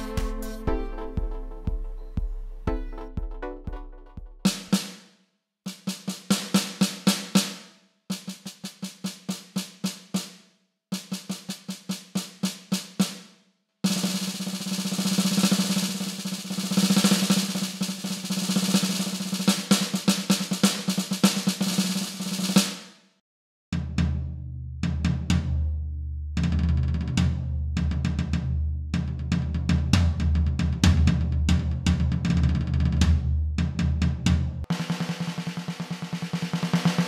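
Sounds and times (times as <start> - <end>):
electronic snare drum strokes: 0.0 - 5.1, 5.7 - 23.0, 34.6 - 37.0.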